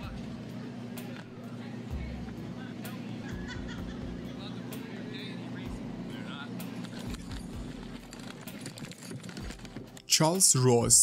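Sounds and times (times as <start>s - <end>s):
low background hum: 0.0s - 11.0s
man talking: 10.1s - 11.0s.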